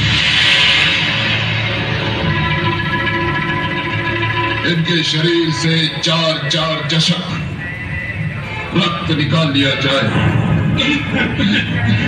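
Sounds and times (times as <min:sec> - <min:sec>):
bright hissing swell: 0:00.0 - 0:04.6
background music with held notes: 0:02.3 - 0:12.0.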